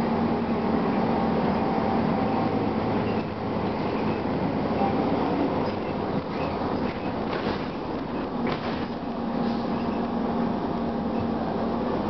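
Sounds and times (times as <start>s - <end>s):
bus engine hum: 0.0s - 12.0s.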